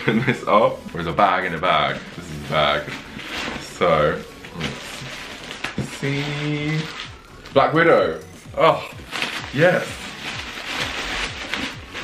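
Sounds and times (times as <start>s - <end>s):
plastic packaging crinkling: 0.0s - 8.0s, 8.8s - 12.0s
music with low thudding beat: 0.0s - 12.0s.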